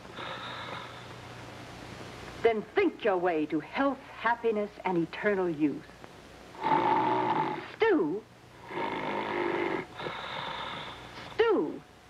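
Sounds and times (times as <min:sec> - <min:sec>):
man snoring: 0:06.6 - 0:07.7, 0:08.6 - 0:11.0.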